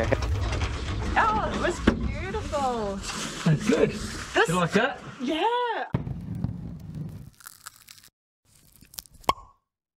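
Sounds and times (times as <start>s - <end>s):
watermelon cracking open: 6.2s - 9.6s
wet crunching and crackling: 6.3s - 9.5s.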